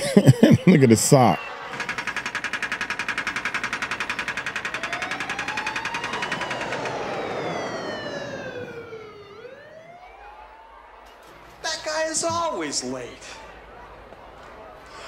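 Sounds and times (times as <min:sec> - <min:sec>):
jet airplane flying past: 0:04.6 - 0:11.5.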